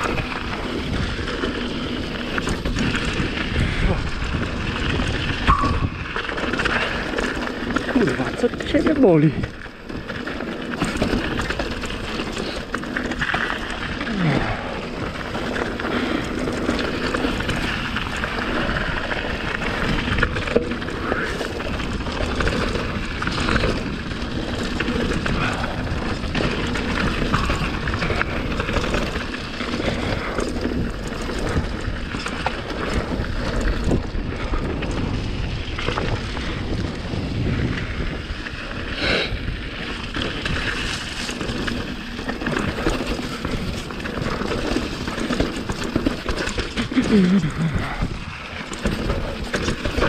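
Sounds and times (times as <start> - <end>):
bike rattling and clicking: 0.0 - 50.0
bike tyres on loose gravel: 0.0 - 50.0
wind buffeting microphone: 0.0 - 50.0.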